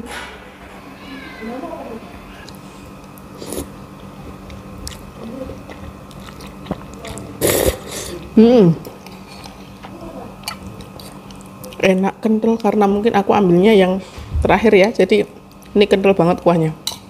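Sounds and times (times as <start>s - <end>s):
person slurping noodles: 3.4s - 3.7s, 7.4s - 8.1s.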